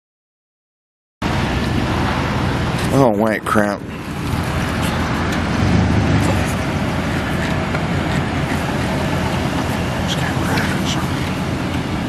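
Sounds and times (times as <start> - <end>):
car engine running: 1.2 - 12.0.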